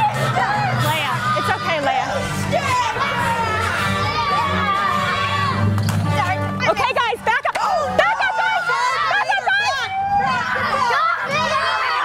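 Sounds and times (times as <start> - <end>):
children shouting excitedly: 0.0 - 5.7, 6.6 - 12.0
background music: 0.0 - 12.0.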